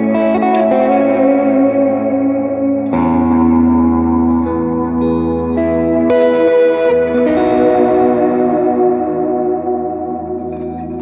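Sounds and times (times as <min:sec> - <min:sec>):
electric guitar playing: 0:00.0 - 0:11.0.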